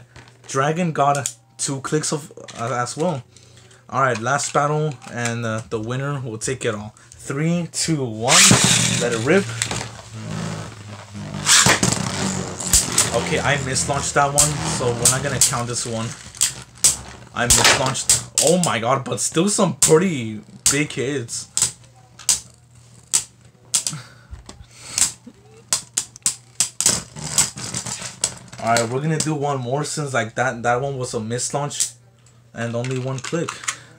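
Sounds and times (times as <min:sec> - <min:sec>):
steady low hum: 0:00.0 - 0:32.6
spinning tops whirring: 0:08.3 - 0:10.5
top landing with scraping burst: 0:08.3 - 0:16.6.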